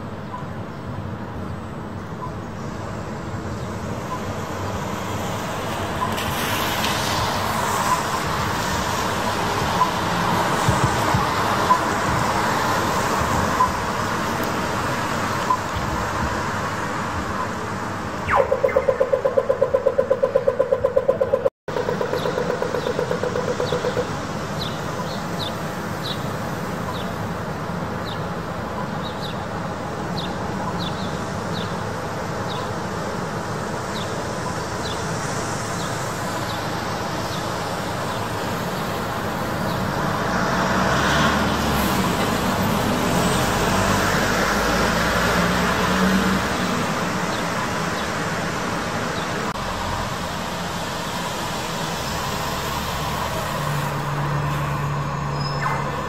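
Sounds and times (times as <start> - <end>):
traffic on wet roads: 0.0 - 56.0
crossing signal rapid ticking: 3.9 - 6.3, 7.8 - 16.0, 17.3 - 25.4.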